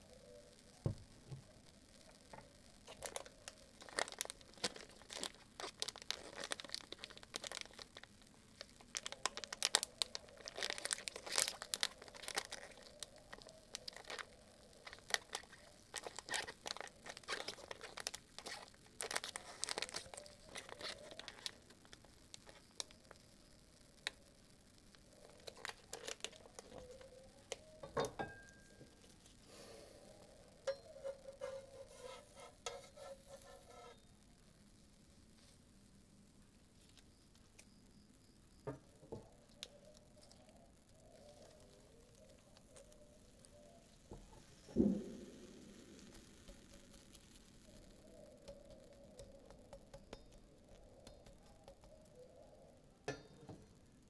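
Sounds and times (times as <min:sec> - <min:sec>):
plastic wrapper crinkling: 0:00.0 - 0:29.5, 0:39.2 - 0:52.4.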